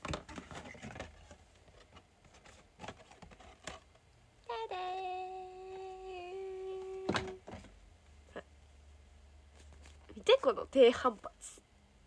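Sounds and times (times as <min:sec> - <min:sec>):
woman humming: 0:04.4 - 0:07.4.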